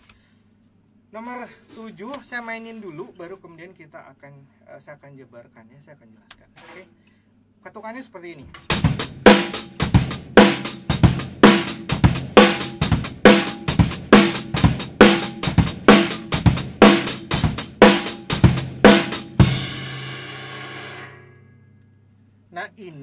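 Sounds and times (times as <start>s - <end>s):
drum kit playing groove: 8.5s - 21.2s
cymbal ringing: 17.9s - 22.2s.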